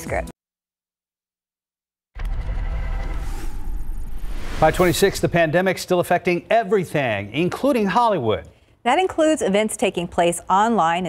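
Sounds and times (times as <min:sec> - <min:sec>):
tv news opening sting: 0:02.2 - 0:06.4.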